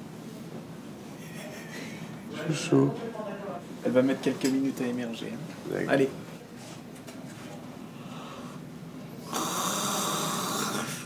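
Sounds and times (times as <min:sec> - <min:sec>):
woman's rasping snore-like breath: 0:09.2 - 0:11.0.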